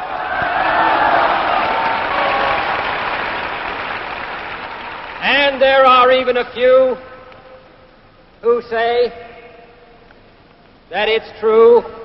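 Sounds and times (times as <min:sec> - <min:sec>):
crowd applauding and cheering: 0:00.0 - 0:05.5.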